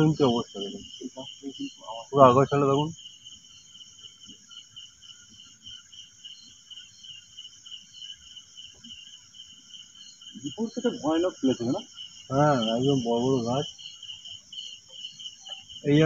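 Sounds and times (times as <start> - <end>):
crickets trilling: 0.0 - 16.0.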